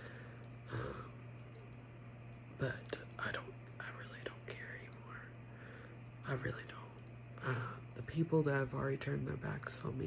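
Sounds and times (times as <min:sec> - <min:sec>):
faint low hum: 0:00.0 - 0:10.0
woman whispering: 0:02.6 - 0:05.4, 0:06.2 - 0:08.3.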